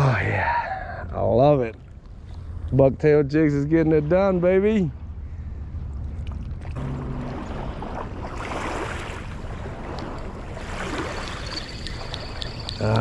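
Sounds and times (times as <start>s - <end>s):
fishing reel whine with ticks: 10.9s - 13.0s.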